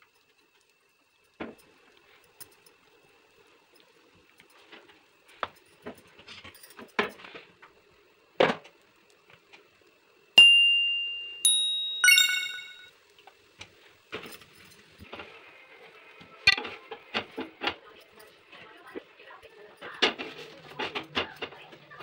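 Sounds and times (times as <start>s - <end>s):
metallic rings: 10.4s - 12.9s.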